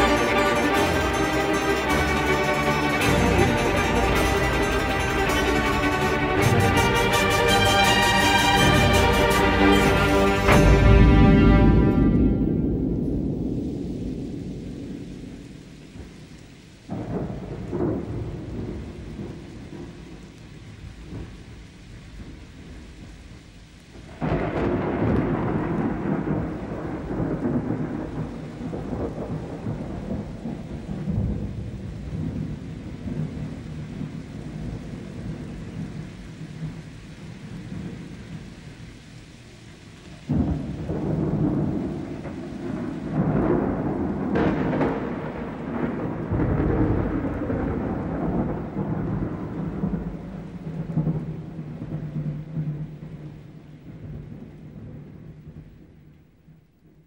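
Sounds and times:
rolling thunder: 0.0s - 56.6s
steady rain: 0.0s - 57.0s.

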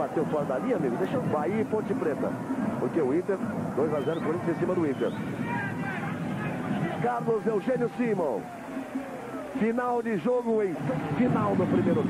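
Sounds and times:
faint voices: 0.0s - 12.0s
stadium crowd noise: 0.0s - 12.0s.

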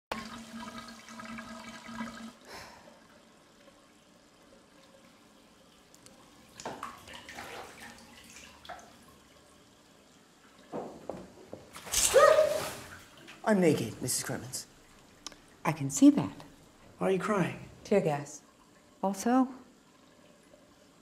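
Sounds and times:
water rushing from taps into tub: 0.1s - 21.0s.

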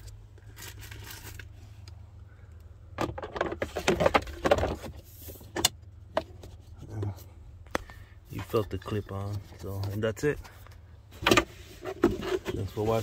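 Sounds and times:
steady low hum: 0.0s - 13.0s
plastic glove box knocks and scrapes: 3.0s - 6.5s.

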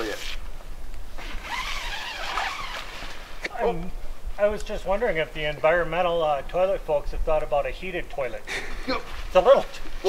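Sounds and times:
tent zipper pulled open: 1.2s - 3.5s.

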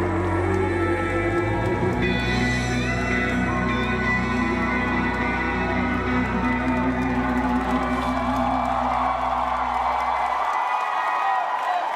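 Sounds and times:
audience cheering: 4.0s - 11.9s.

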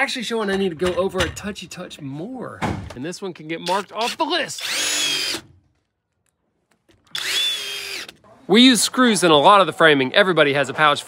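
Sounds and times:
cordless drill driving a screw: 3.6s - 5.5s, 7.1s - 8.2s.

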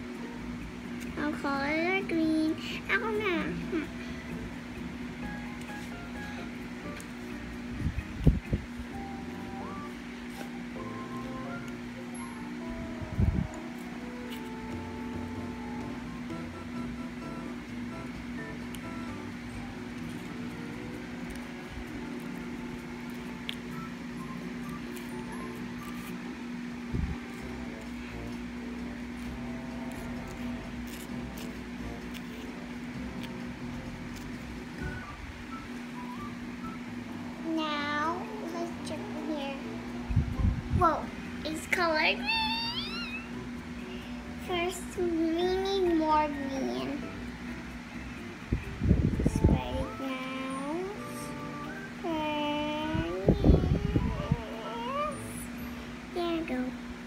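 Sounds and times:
quiet background music: 0.0s - 57.0s
steady low hum: 0.0s - 57.0s.

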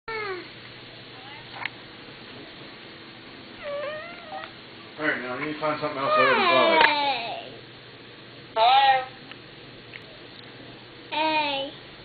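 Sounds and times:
toddler squealing: 6.0s - 6.8s.

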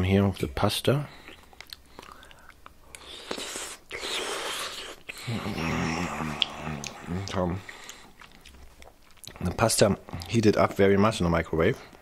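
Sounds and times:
wet chewing mouth noises: 1.2s - 5.3s, 6.1s - 10.4s.

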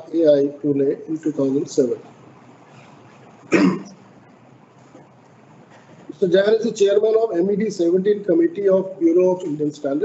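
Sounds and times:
person coughing: 3.5s - 4.0s.

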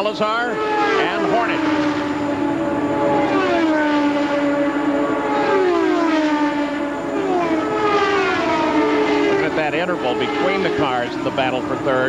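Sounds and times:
race car engines passing: 0.0s - 12.0s.

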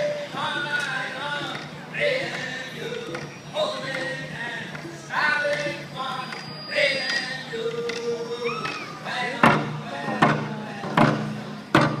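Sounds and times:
hand drums booming: 9.4s - 12.0s.

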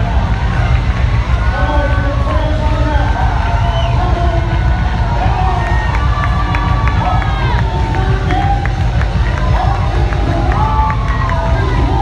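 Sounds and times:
crowd cheering and singing along: 0.0s - 12.0s.

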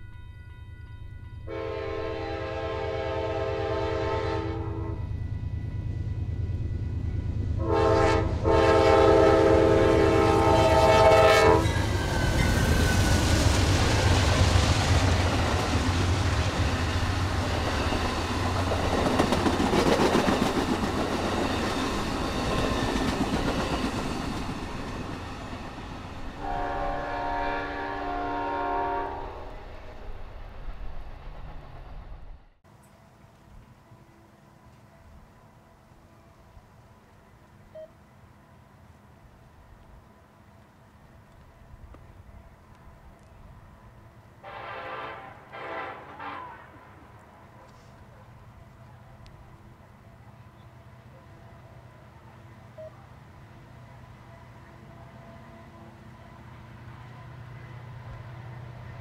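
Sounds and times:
locomotive air horn chord: 0.0s - 5.1s, 7.6s - 11.8s, 26.4s - 29.6s, 44.4s - 47.0s
rumble of passing train: 0.0s - 59.0s
train wheels clattering on rails: 11.6s - 26.5s.

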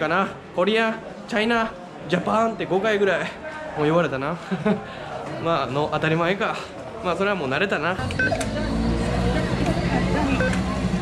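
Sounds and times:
faint voices: 0.0s - 11.0s
keypad beep: 8.1s - 8.5s, 10.2s - 10.7s.

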